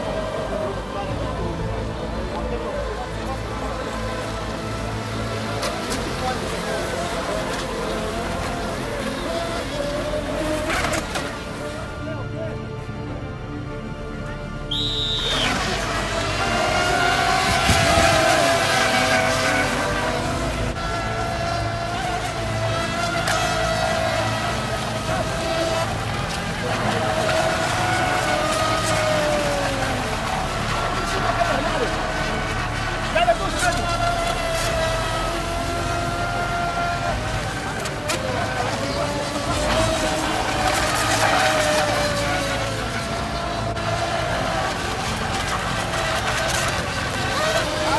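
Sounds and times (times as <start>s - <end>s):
rc boats whining: 0.0s - 47.9s
high whistle: 14.6s - 15.8s
water spray: 14.7s - 47.9s.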